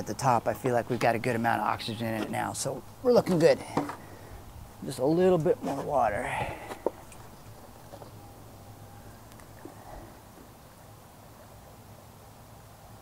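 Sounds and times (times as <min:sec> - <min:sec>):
low hum: 0:06.2 - 0:10.5.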